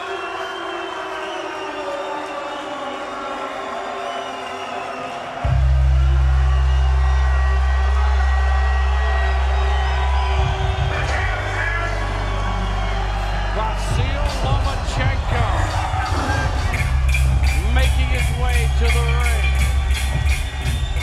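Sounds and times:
crowd noise: 0.0s - 21.0s
music over arena sound system: 0.0s - 21.0s
sharp percussive beat: 13.9s - 21.0s.

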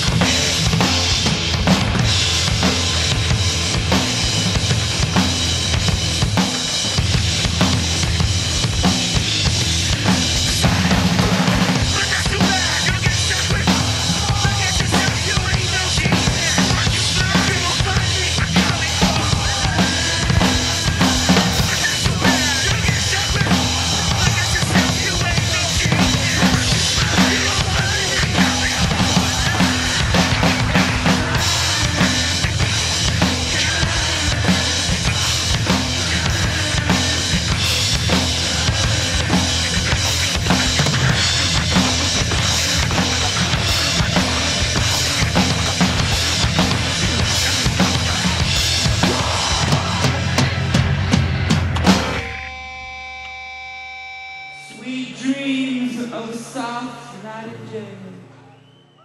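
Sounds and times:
rock drum beat: 0.0s - 54.5s
recorded rock song: 0.0s - 58.8s.

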